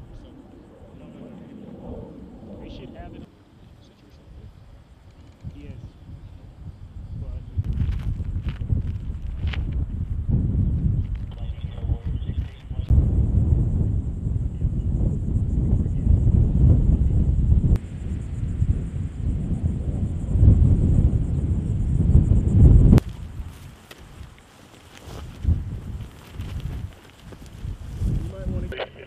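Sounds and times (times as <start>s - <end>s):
wind buffeting microphone: 0.0s - 29.0s.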